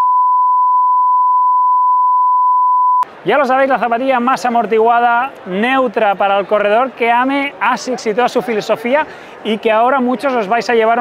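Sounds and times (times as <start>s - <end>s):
censor bleep tone: 0.0s - 3.0s.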